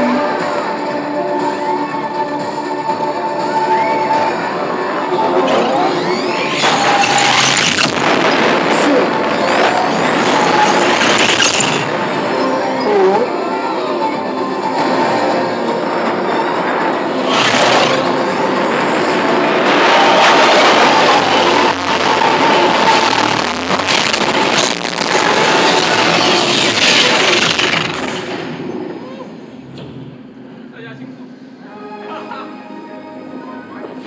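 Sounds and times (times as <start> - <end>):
ride soundtrack music: 0.0 - 27.8, 31.4 - 34.0
roller coaster wind and track noise: 0.0 - 31.8.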